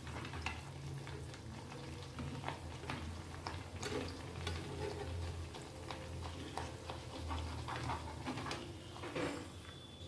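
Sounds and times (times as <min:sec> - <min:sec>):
batter sizzling in hot oil: 0:00.0 - 0:10.0
spatula pushing in pan: 0:06.2 - 0:09.4.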